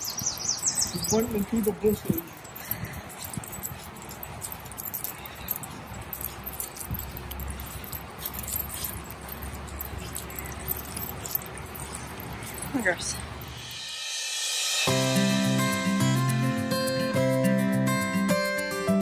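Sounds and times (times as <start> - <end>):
dog collar jingling: 0.0 - 14.0, 14.8 - 19.0.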